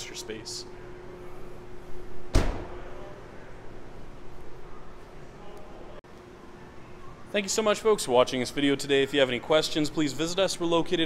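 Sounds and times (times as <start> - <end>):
car liftgate slamming shut: 2.3 - 2.8.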